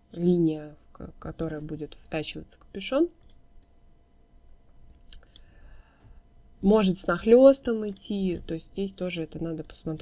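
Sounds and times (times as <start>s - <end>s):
computer mouse clicks: 3.2s - 3.8s.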